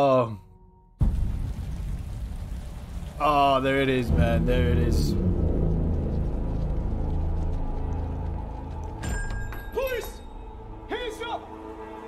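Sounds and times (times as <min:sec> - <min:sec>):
steady rain: 0:01.0 - 0:09.0
low rumble: 0:01.0 - 0:09.6.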